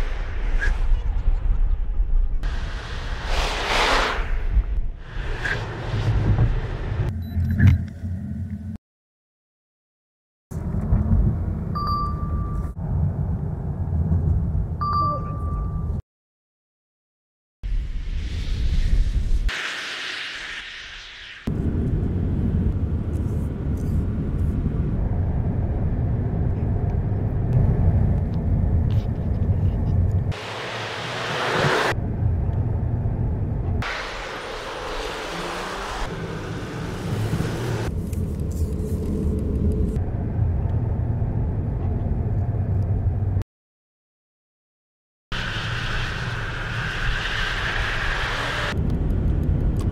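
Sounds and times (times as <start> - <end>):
road and tyre noise: 0.0 - 8.8, 10.5 - 16.0, 18.2 - 43.4, 45.3 - 49.9.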